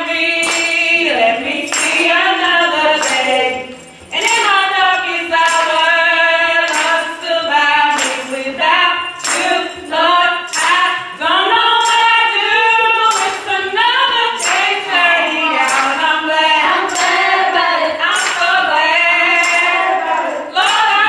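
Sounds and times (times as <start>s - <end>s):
girls singing gospel: 0.0s - 21.0s.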